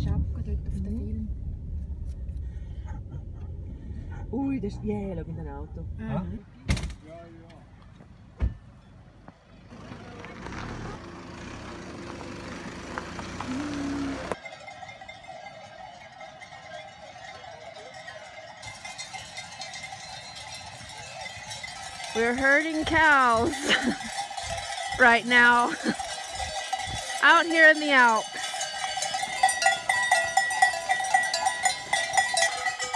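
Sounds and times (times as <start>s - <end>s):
outdoor noise: 0.0s - 32.9s
cowbells jangling: 13.5s - 32.9s.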